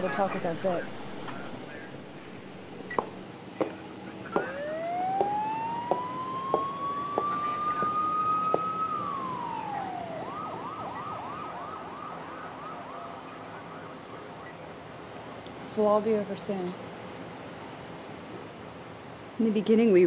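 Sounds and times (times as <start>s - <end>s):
police siren wailing and yelping: 4.3s - 14.7s.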